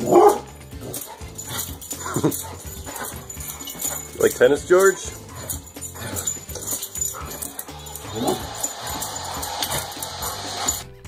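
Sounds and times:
dog vocalising excitedly: 0:00.0 - 0:04.2, 0:05.0 - 0:10.8
background music with bass line: 0:00.0 - 0:11.0.

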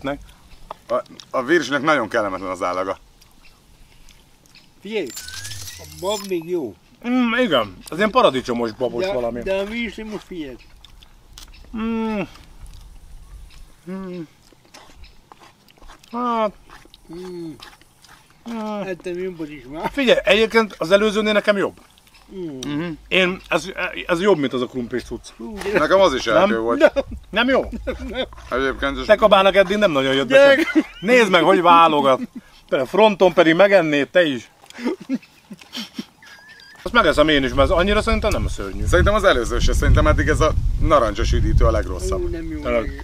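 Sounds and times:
faint thin high whine: 0:05.0 - 0:06.7
people murmuring while eating: 0:06.7 - 0:43.0
man humming mm: 0:11.7 - 0:12.4, 0:13.8 - 0:14.4, 0:17.1 - 0:17.6, 0:22.3 - 0:23.1.

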